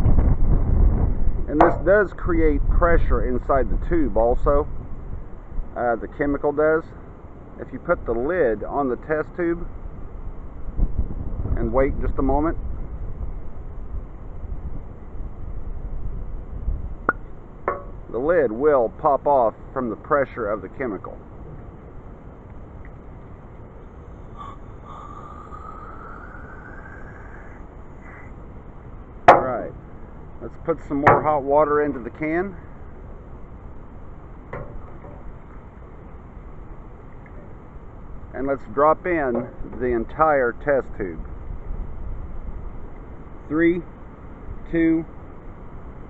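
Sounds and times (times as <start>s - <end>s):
wind buffeting microphone: 0.0s - 5.8s, 9.6s - 18.4s
outdoor background noise: 0.0s - 46.0s.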